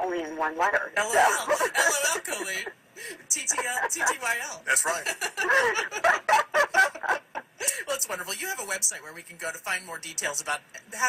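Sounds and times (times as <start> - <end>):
people laughing: 1.0 - 8.0.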